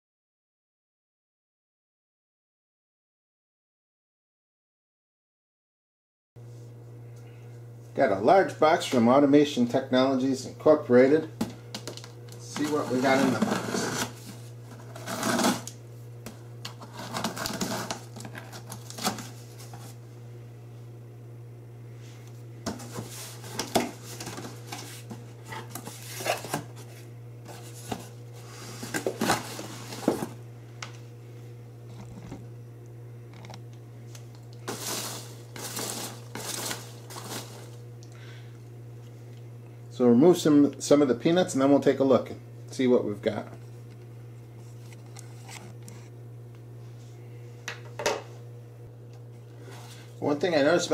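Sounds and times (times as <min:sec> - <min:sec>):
steady low hum: 0:06.4 - 0:50.9
packing tape tearing: 0:11.8 - 0:15.8, 0:16.7 - 0:19.8, 0:34.6 - 0:37.8
packing peanuts shifting: 0:16.7 - 0:19.9, 0:34.3 - 0:37.8.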